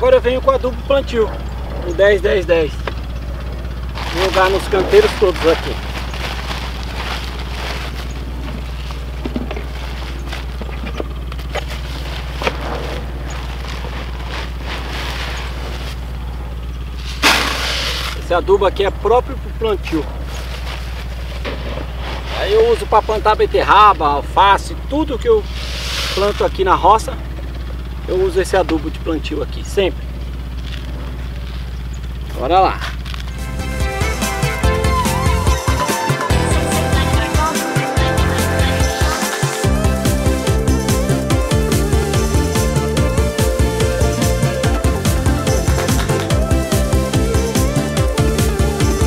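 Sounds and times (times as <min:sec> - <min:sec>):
steady low hum: 0:00.0 - 0:49.0
plastic bag rustling: 0:03.7 - 0:18.2, 0:20.2 - 0:22.8.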